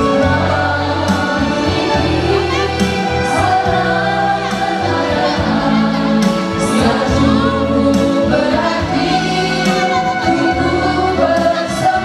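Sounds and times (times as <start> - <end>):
instrumental accompaniment with bass: 0.0 - 12.0
women singing in unison: 0.0 - 12.0.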